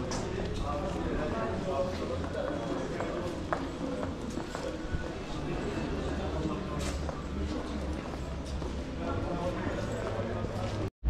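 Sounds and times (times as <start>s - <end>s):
murmur of voices: 0.0s - 10.9s
footsteps on stone floor: 1.8s - 5.3s.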